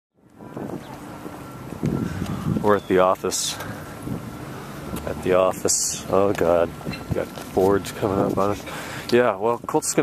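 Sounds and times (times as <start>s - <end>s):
wind noise on microphone: 0.2s - 5.7s, 6.7s - 8.8s, 9.4s - 10.0s.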